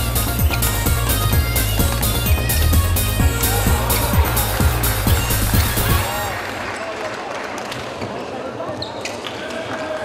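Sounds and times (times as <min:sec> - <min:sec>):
spectator chatter: 0:00.5 - 0:10.0.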